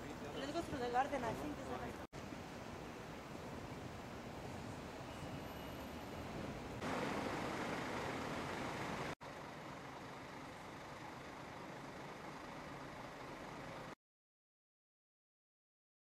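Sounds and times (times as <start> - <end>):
city street traffic rumble: 0.0 - 14.0
steady street hum: 0.0 - 14.0.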